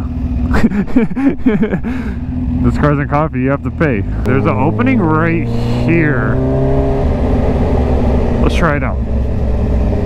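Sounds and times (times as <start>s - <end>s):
motorcycle engine idling: 0.0s - 4.3s.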